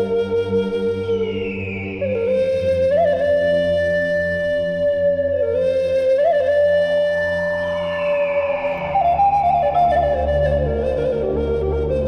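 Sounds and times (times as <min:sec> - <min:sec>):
flute long note: 0:00.0 - 0:12.0
high gliding tone: 0:06.8 - 0:11.2
low sustained drone: 0:07.3 - 0:11.2.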